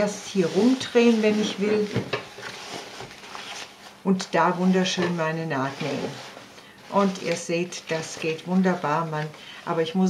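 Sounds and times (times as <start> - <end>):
stiff material rustling: 0.0 - 9.9.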